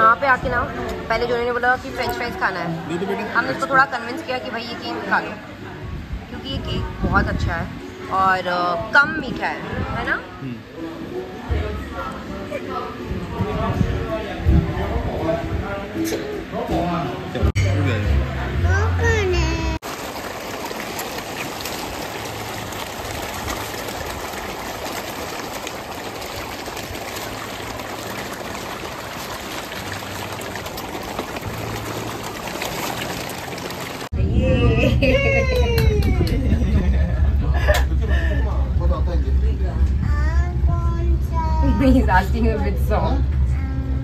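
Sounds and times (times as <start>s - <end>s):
fish splashing pond water: 19.8s - 34.2s
woman laughing: 34.5s - 37.8s.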